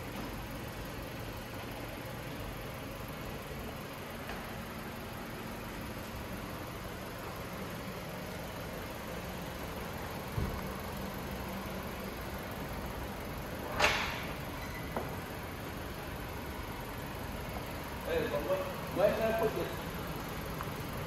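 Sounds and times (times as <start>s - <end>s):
background hum and hiss: 0.0s - 21.0s
brief thump: 10.3s - 10.7s.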